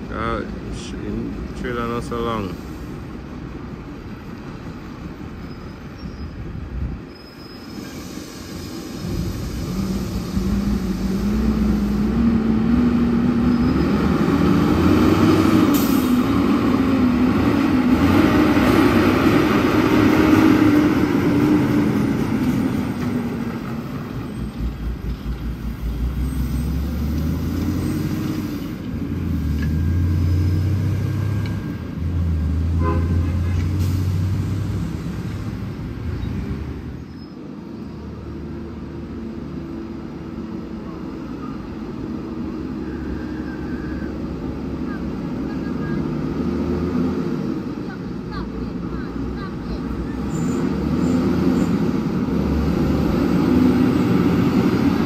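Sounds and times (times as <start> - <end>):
road traffic hum: 0.0 - 55.0
truck diesel engine passing: 8.1 - 55.0.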